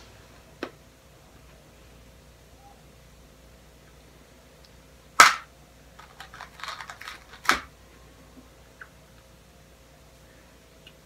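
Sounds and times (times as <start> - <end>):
jelly beans clicking and rustling: 4.6 - 7.8
plastic bag crinkling: 6.0 - 7.7.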